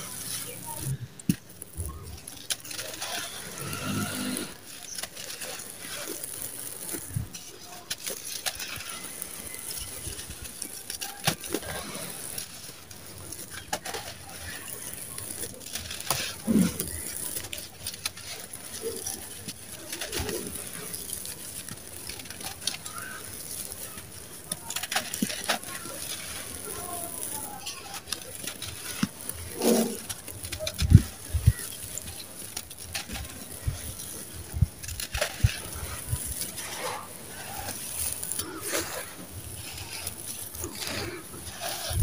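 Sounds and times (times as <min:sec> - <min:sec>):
sand-cement crumbling and sifting: 0:00.0 - 0:42.0.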